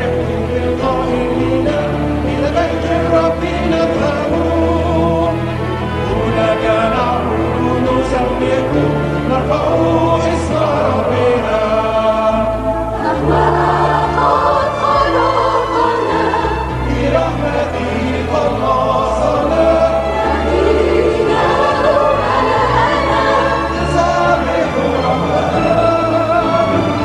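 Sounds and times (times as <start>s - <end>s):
mixed choir singing a hymn: 0.0s - 27.0s.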